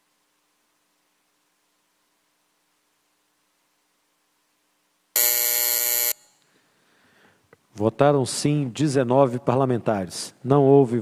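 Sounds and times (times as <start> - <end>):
electric buzzer: 5.2 - 6.4.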